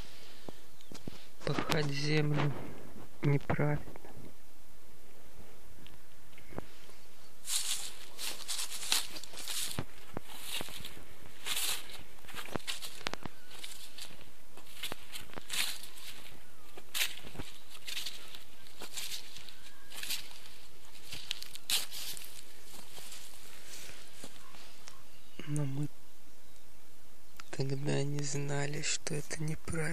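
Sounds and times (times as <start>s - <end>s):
footsteps crunching on grass and snow: 0.0s - 4.2s, 5.4s - 25.4s.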